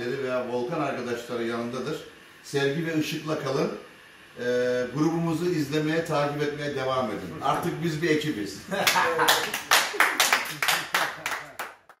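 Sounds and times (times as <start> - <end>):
people laughing: 8.6 - 11.6
people clapping: 8.8 - 12.0.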